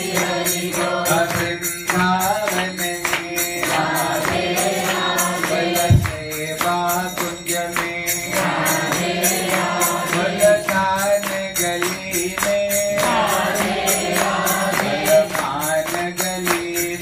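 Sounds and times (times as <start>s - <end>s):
jingling percussion: 0.0s - 17.0s
man singing a devotional chant: 0.0s - 17.0s
low drum thump: 5.9s - 6.2s.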